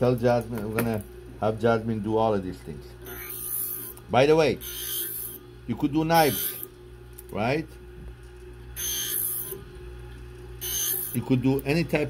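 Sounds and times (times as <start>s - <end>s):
low machine hum: 0.0s - 12.0s
scissor blade grinding on wheel: 3.0s - 4.0s, 4.6s - 5.4s, 6.1s - 6.7s, 8.8s - 9.6s, 10.6s - 11.3s.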